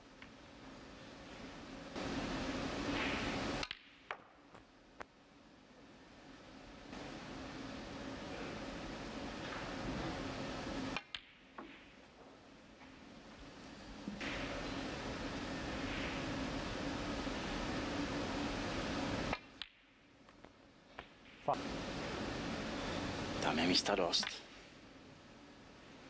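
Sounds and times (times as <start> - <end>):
low hall hum: 0.0 - 26.0.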